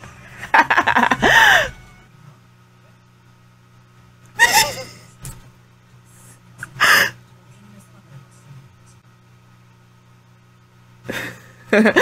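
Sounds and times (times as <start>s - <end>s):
woman gasping laugh: 0.9s - 1.8s, 4.4s - 5.1s.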